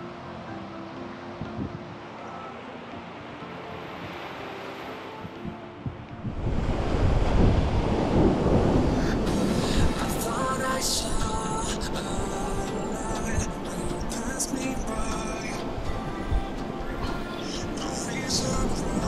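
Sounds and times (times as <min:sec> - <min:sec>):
soft background music: 0:00.0 - 0:19.0
surf breaking on a beach: 0:00.1 - 0:19.0
wind buffeting the microphone: 0:01.4 - 0:02.0, 0:05.2 - 0:10.3.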